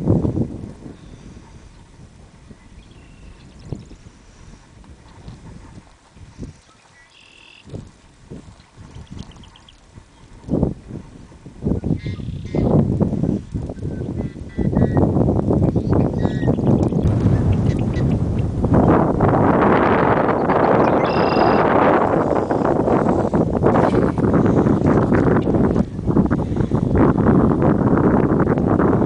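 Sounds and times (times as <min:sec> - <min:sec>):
wind buffeting microphone: 0:00.0 - 0:29.0
high-pitched bird calls: 0:06.6 - 0:07.7, 0:09.0 - 0:10.3, 0:12.0 - 0:12.7, 0:15.7 - 0:18.5, 0:20.3 - 0:21.7.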